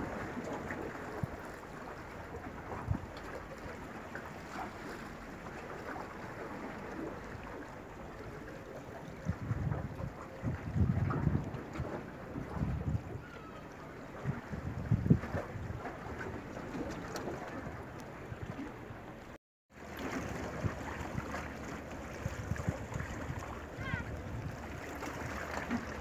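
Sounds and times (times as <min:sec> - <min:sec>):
wind buffeting microphone: 0:02.3 - 0:03.2, 0:09.0 - 0:19.2, 0:20.1 - 0:26.0.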